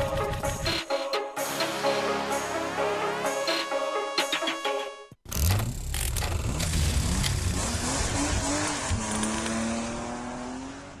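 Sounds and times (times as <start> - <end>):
music: 0.0 - 5.2
car engine revving: 5.7 - 11.0.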